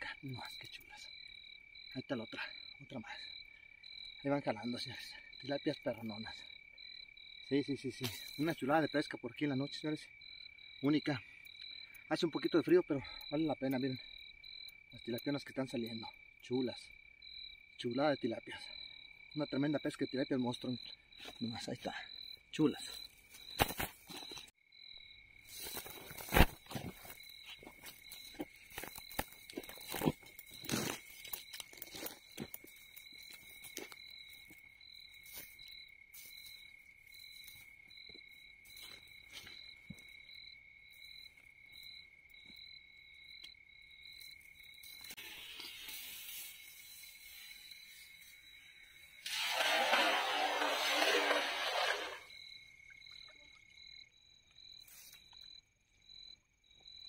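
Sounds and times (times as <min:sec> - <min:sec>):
crickets chirping: 0:00.0 - 0:57.0
clicks and crunches of net handling: 0:25.7 - 0:27.2.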